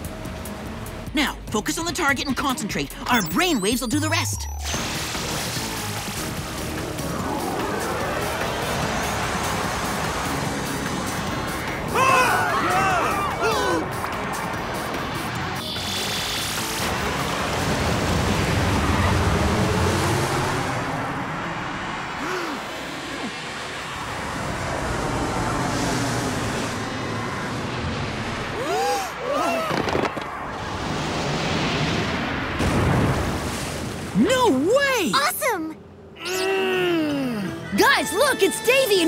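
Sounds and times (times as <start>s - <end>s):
background music: 0.0s - 18.3s, 36.4s - 39.0s
rushing rumbling sound effect: 13.9s - 28.6s.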